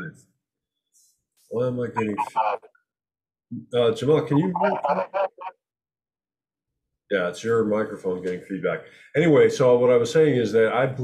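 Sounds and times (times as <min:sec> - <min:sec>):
man's voice trailing off: 0:01.9 - 0:02.6, 0:04.0 - 0:05.5.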